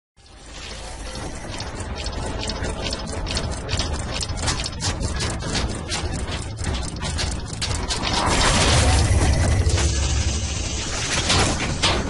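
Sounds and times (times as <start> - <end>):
rapid mechanical clicking: 0.2 - 12.0
steady low rumble: 0.3 - 12.0.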